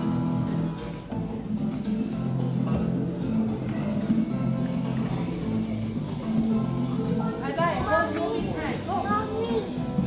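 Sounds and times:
background music: 0.0s - 10.0s
children calling out: 6.8s - 10.0s.

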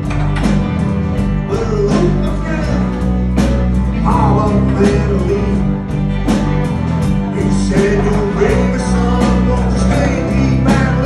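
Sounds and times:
bass guitar: 0.0s - 11.0s
drum kit beat: 0.0s - 11.0s
guitars playing: 0.0s - 11.0s
man singing: 1.3s - 6.1s, 7.2s - 11.0s.

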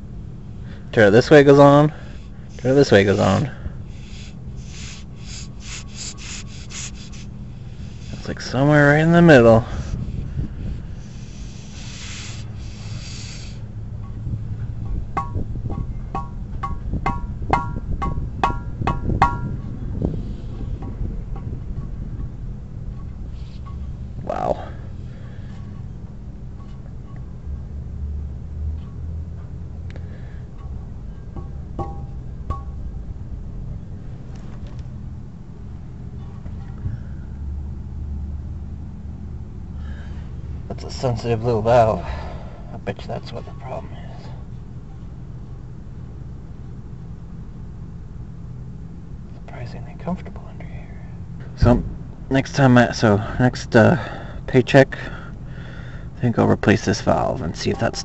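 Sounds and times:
steady low hum: 0.0s - 58.0s
compressed air hissing from valve: 1.9s - 13.7s.

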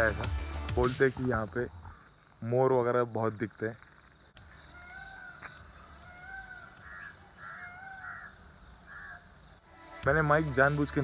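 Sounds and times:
harsh bird calls: 0.0s - 11.0s
clear bird calls: 3.2s - 9.8s.

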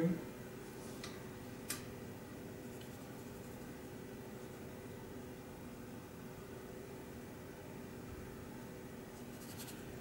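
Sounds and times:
steady low hum: 0.0s - 10.0s
paint brush scratching cardboard: 9.2s - 9.9s.

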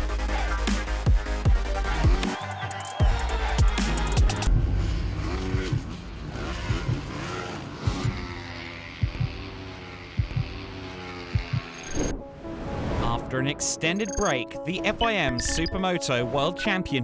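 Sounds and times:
motorcycle engines revving and passing: 3.9s - 12.1s.

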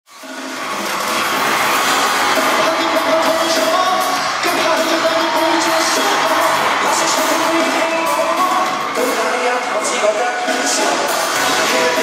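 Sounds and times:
loud live pop music: 0.1s - 12.0s.

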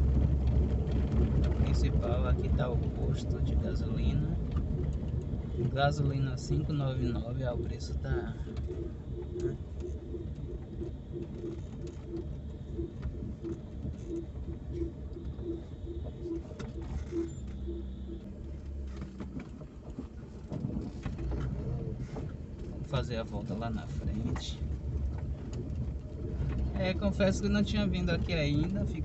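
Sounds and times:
car engine and road noise: 0.0s - 29.0s.

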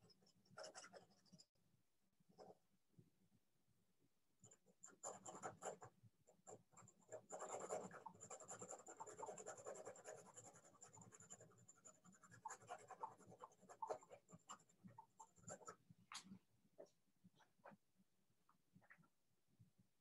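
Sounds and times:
drawing tool scratching on paper: 0.0s - 1.5s, 4.4s - 15.9s.

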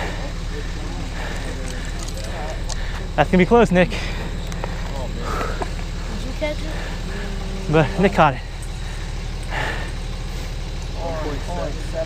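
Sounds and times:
murmur of voices: 0.0s - 12.0s
steady low hum: 0.0s - 12.0s.

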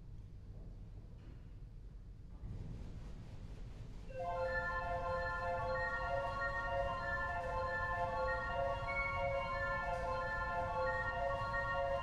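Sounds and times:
pipe organ chords: 4.2s - 12.0s.

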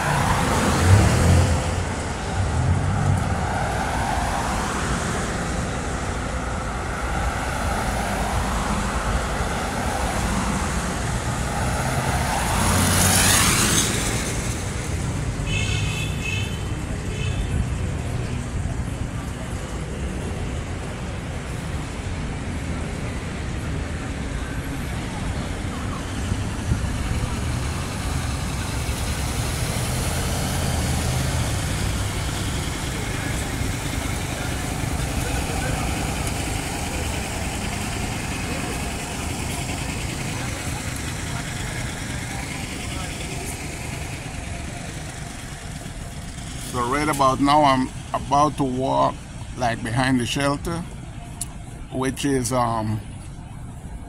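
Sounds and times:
passing cars on city street: 0.0s - 54.0s.

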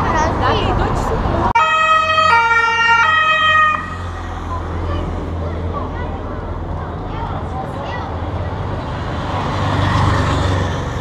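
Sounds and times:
street noise: 0.0s - 11.0s
motorcycle siren: 1.6s - 4.0s.

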